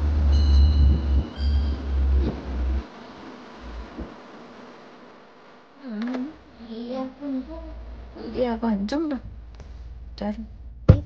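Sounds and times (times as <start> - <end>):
air and road rushing: 0.0 - 4.6.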